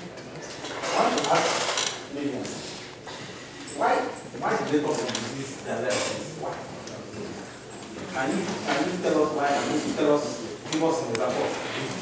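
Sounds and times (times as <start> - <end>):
man speaking: 8.1 - 12.0.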